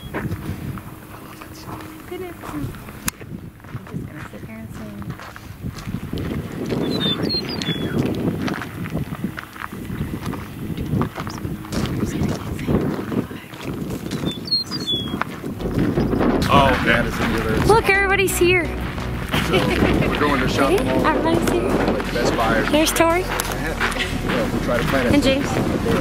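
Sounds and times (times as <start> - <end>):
meadowlark singing: 0.0 - 0.4, 6.8 - 8.3, 14.0 - 15.2
low indistinct voices: 0.7 - 5.2, 9.6 - 26.0.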